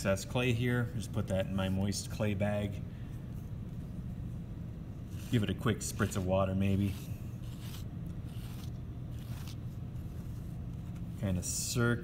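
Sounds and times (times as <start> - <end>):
metal rib scraping clay: 5.0 - 11.4.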